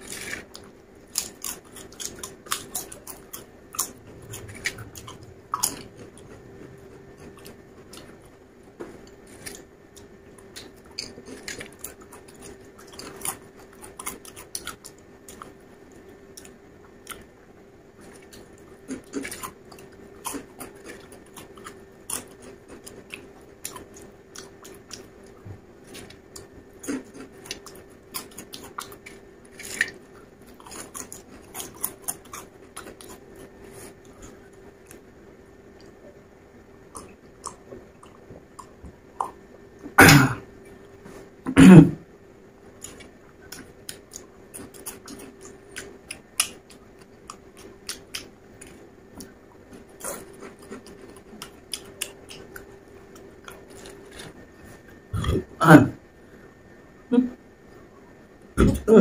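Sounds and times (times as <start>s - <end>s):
potato chips crunched and chewed: 0.0s - 6.0s, 25.8s - 34.4s, 42.8s - 54.4s
faint steady hum: 0.0s - 59.0s.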